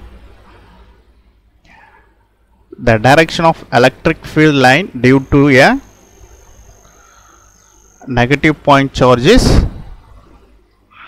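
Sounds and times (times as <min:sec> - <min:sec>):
faint high-pitched whine: 0:00.0 - 0:11.0
low hum: 0:00.0 - 0:11.0.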